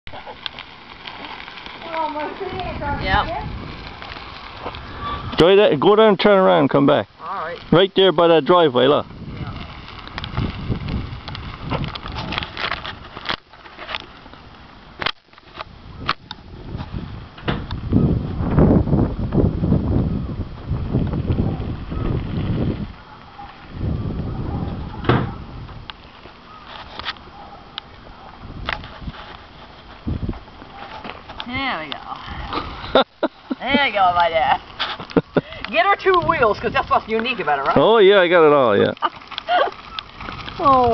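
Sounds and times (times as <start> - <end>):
wind rumbling on microphone: 0.1 - 40.9.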